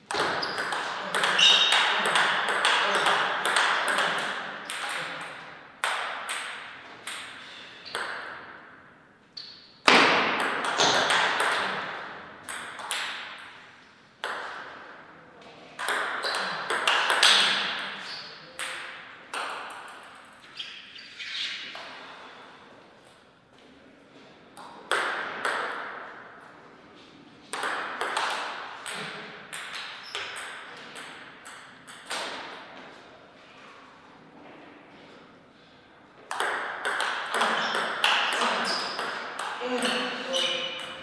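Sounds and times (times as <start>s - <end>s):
ball bouncing on table: 0.1s - 8.5s, 9.9s - 13.6s, 14.2s - 14.7s, 15.8s - 20.0s, 27.5s - 32.6s, 36.3s - 41.0s
ping pong ball clicking off paddles: 0.1s - 8.6s, 9.4s - 13.6s, 14.2s - 14.8s, 15.8s - 20.4s, 24.6s - 26.1s, 27.5s - 32.6s, 36.3s - 41.0s.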